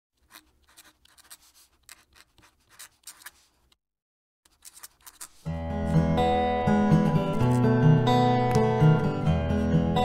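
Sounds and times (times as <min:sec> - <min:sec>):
fountain pen scratching on paper: 0:00.2 - 0:03.6, 0:04.5 - 0:05.5.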